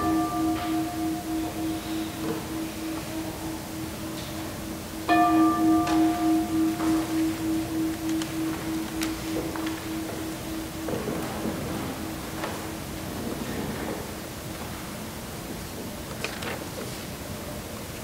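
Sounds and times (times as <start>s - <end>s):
singing bowl ringing: 0.0s - 14.4s.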